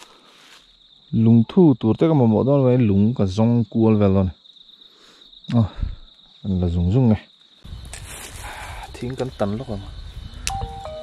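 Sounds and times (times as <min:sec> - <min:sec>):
high-pitched insect call: 0:00.0 - 0:11.0
man talking: 0:01.1 - 0:04.4, 0:05.5 - 0:07.3, 0:08.9 - 0:10.0.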